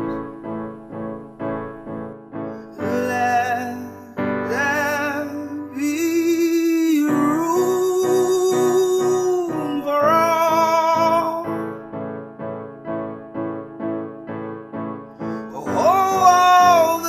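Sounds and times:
keyboard chords: 0.0s - 17.0s
man singing: 2.6s - 11.8s, 15.3s - 17.0s.

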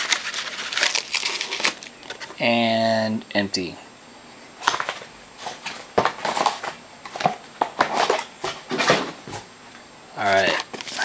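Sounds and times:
foil card packs crinkling: 0.0s - 2.4s, 4.6s - 9.4s, 10.2s - 11.0s.

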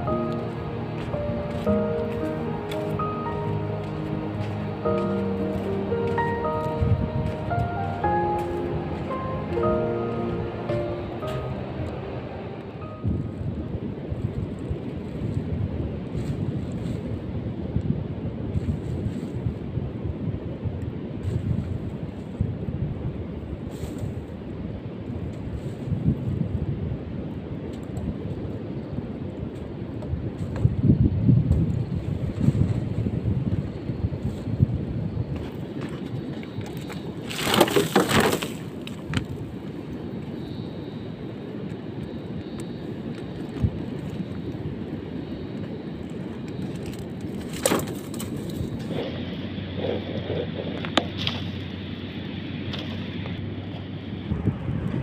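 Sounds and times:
wind on microphone: 0.0s - 55.0s.

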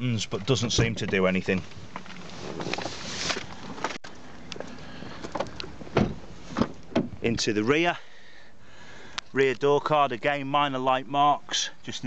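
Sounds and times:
rustling movement: 1.1s - 7.2s.

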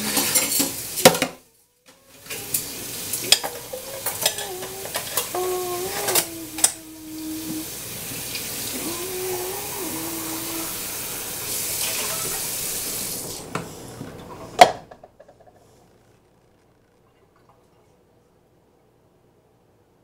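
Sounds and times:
dishes and cutlery clattering: 0.0s - 1.4s, 3.1s - 5.3s
running tap water: 2.0s - 14.9s.

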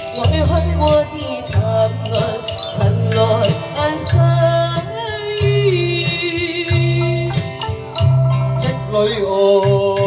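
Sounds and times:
woman singing into a microphone: 0.0s - 8.1s
karaoke backing track with bass beat: 0.0s - 10.0s.

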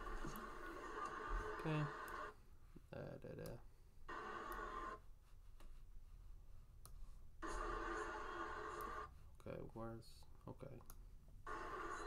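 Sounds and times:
faint video audio from computer: 0.0s - 12.0s.

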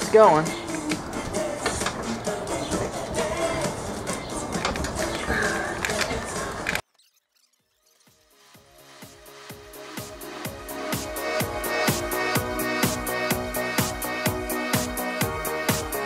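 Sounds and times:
indistinct voices: 0.0s - 6.8s
electronic music with steady beat: 7.7s - 16.0s.

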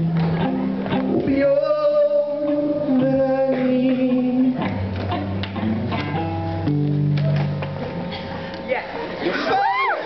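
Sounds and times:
electric guitar chords ringing: 0.0s - 8.4s.

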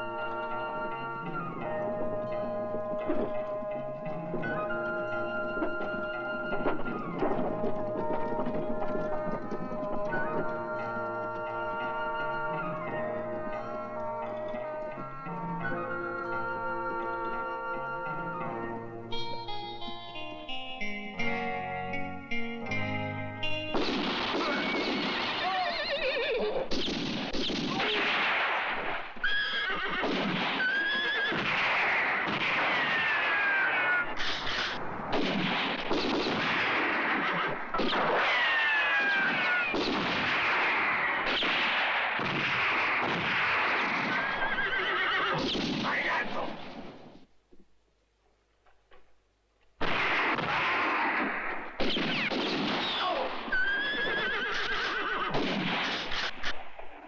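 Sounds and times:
horses neighing: 24.4s - 26.8s, 29.2s - 34.8s, 36.7s - 39.8s, 43.6s - 46.7s, 52.9s - 56.3s.

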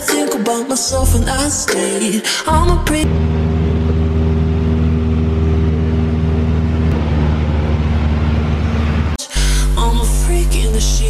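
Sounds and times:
aircraft engine and propeller droning: 3.0s - 9.2s.

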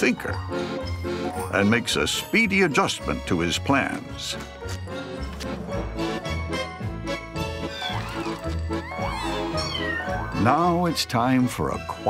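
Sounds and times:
kittens meowing: 7.6s - 10.6s.

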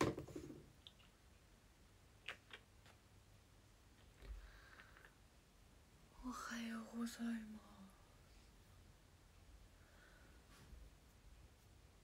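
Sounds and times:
woman speaking softly: 6.1s - 8.2s.

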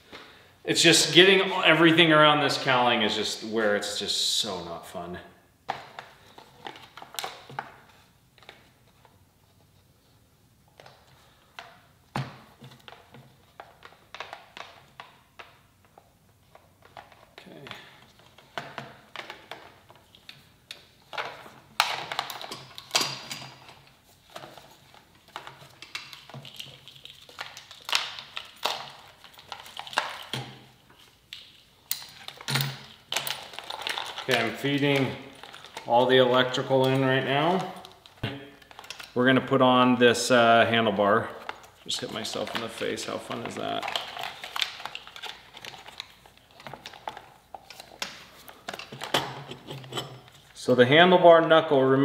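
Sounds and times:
cables clicking and tapping on plastic: 10.8s - 39.2s.

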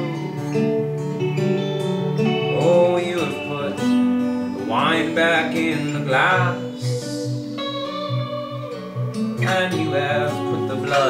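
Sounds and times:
acoustic guitar: 0.0s - 11.0s
electric guitar: 0.0s - 11.0s.

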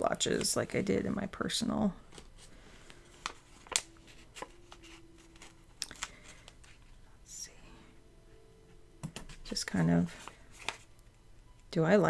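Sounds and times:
paper rustling: 2.1s - 6.9s, 9.3s - 10.9s.

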